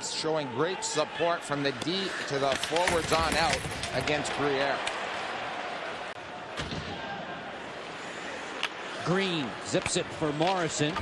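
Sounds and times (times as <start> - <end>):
crowd noise: 0.0 - 11.0
hockey sticks and puck knocking: 1.8 - 5.0.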